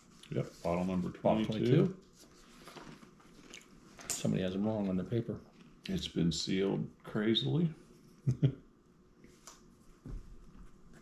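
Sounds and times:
paper rustling and crinkling: 0.0 - 4.1.

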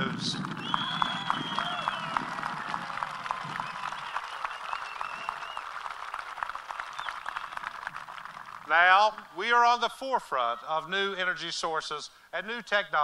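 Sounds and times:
audience applauding: 0.0 - 9.3.

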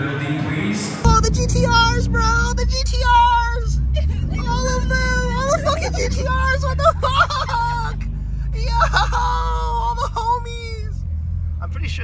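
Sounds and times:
car driving hum: 1.0 - 12.0.

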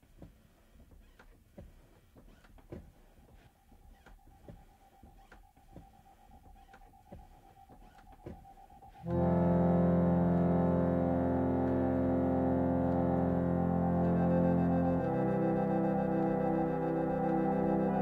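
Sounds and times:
sustained keyboard chord: 6.9 - 18.0.

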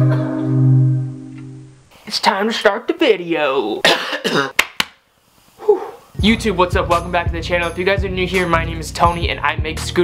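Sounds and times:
man's voiced sound: 2.1 - 4.0
sharp coughs: 3.8 - 4.6.

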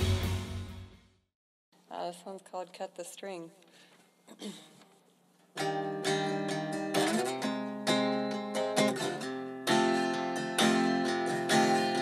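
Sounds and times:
acoustic guitar strumming: 5.6 - 12.0.

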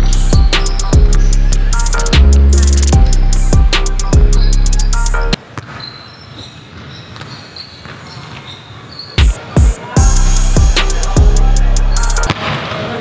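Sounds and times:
music with heavy bass beat: 0.0 - 5.4, 9.2 - 12.3.

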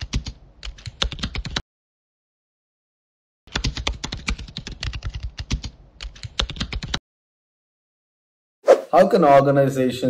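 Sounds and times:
computer keyboard typing: 0.0 - 1.6, 3.5 - 7.0.

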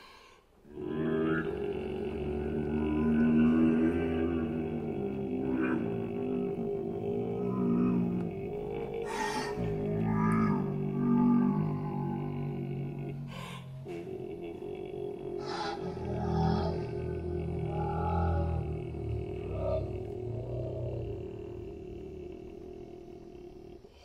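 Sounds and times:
breathy noises: 0.0 - 24.0.

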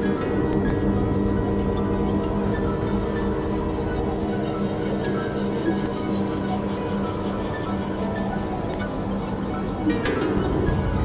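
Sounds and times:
low synthesizer drone: 0.0 - 11.0
pulsing scratchy noise: 3.7 - 11.0.

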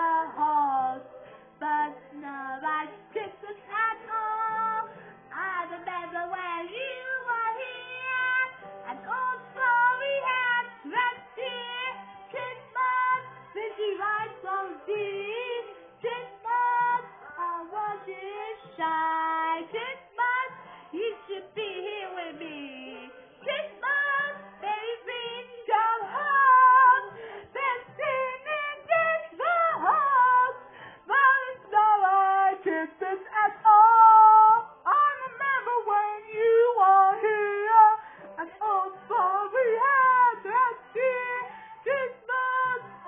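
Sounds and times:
women singing pop song on television: 0.0 - 43.0.

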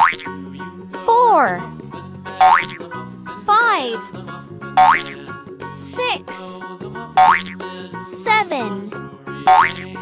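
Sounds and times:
gentle children's music: 0.0 - 10.0.

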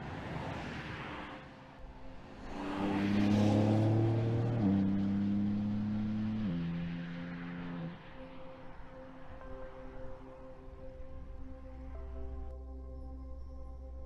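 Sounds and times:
car driving past: 0.0 - 9.2.

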